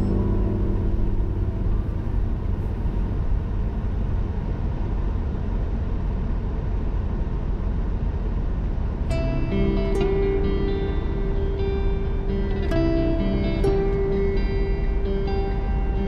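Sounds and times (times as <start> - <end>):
car driving interior rumble: 0.0 - 16.0.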